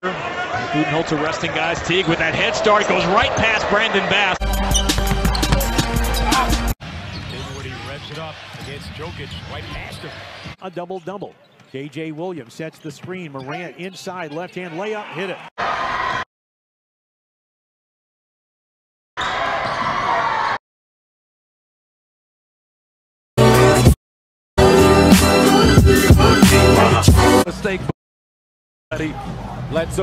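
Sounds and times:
arena crowd noise: 0.0 - 16.3, 19.2 - 20.6, 28.9 - 30.0
basketball dribbling: 4.8 - 6.0
music with heavy bass beat: 24.6 - 27.4.

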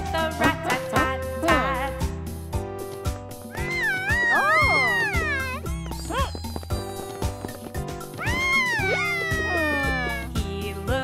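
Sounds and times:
cartoon music with bass line: 0.0 - 11.0
child character wailing: 3.5 - 6.3, 8.2 - 10.3.

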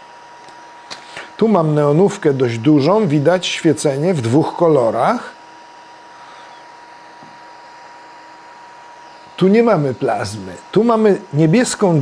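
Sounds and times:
thin high whine: 0.0 - 12.0.

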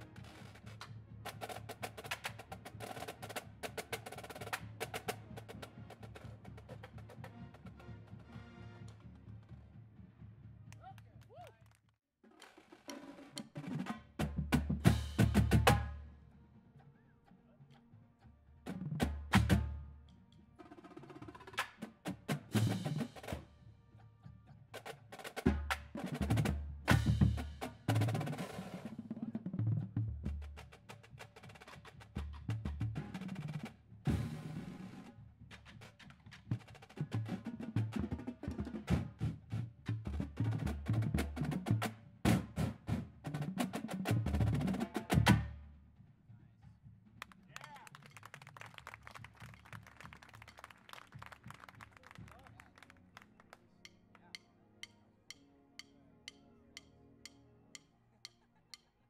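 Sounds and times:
marching drums playing: 0.0 - 11.3, 12.5 - 16.1, 18.7 - 20.0, 20.6 - 23.5, 24.7 - 45.7.

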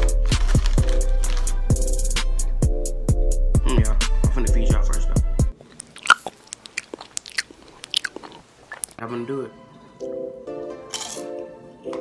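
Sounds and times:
potato chips crunching: 0.0 - 1.6, 5.6 - 9.0, 10.9 - 11.4
music: 0.0 - 5.6, 9.0 - 12.0.

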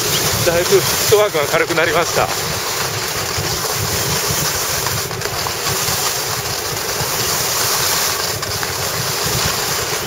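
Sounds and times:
skis scraping over snow: 0.0 - 10.0
wind on microphone: 0.0 - 10.0.

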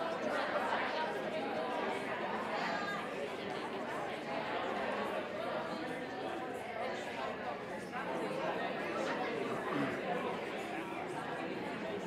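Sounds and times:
murmur of overlapping conversations: 0.0 - 12.0.

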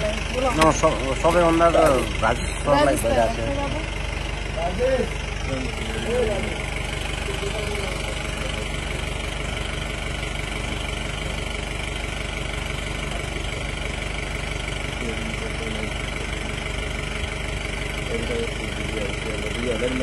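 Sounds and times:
faint voices: 0.0 - 9.7
motor droning: 0.0 - 20.0.

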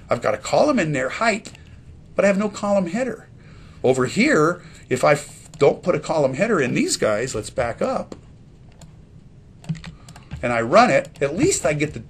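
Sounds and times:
computer keyboard keys clicking: 9.6 - 10.4.

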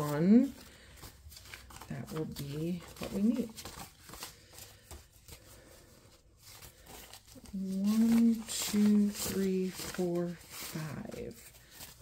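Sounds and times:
banknotes being counted: 0.0 - 12.0.

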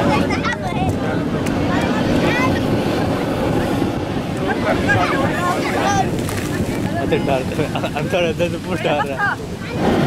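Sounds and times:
surf rumbling: 0.0 - 10.0
voices of onlookers: 0.0 - 10.0
wind: 0.0 - 10.0.

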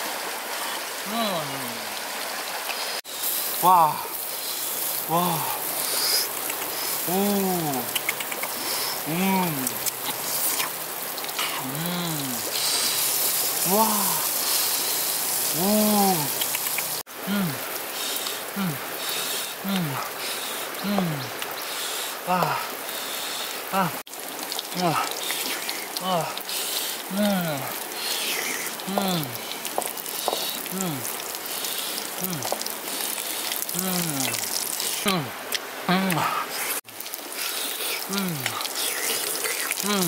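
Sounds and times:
stream water rushing: 0.0 - 40.0
man humming: 1.0 - 2.0, 3.6 - 4.2, 5.1 - 6.3, 7.0 - 8.3, 9.0 - 10.7, 11.4 - 12.8, 13.6 - 14.5, 15.5 - 16.6, 17.2 - 17.7, 18.5 - 18.9, 19.6 - 20.1, 20.8 - 21.4, 22.2 - 22.8, 23.7 - 24.0, 24.7 - 25.2, 26.0 - 26.5, 27.1 - 27.8, 28.8 - 29.5, 30.6 - 31.1, 32.2 - 32.6, 33.7 - 36.5, 38.0 - 39.0, 39.8 - 40.0
man grunting: 1.1 - 1.9, 3.6 - 4.1, 5.1 - 5.6, 7.1 - 7.9, 9.0 - 9.8, 11.5 - 12.5, 13.6 - 14.3, 15.6 - 16.4, 17.3 - 17.6, 18.6 - 18.8, 19.6 - 20.1, 20.8 - 21.3, 22.2 - 22.7, 23.7 - 24.0, 24.7 - 25.1, 26.0 - 26.4, 27.1 - 27.8, 28.8 - 29.4, 30.7 - 31.1, 32.2 - 32.5, 33.8 - 34.4, 35.0 - 36.5, 38.1 - 38.6
food sizzling in oil: 12.4 - 17.0.

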